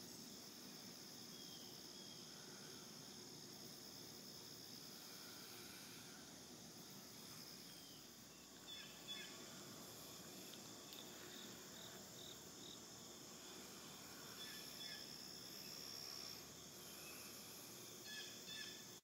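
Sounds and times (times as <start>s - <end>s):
insects chirring: 0.0s - 19.0s
thin high steady drone: 0.0s - 19.0s.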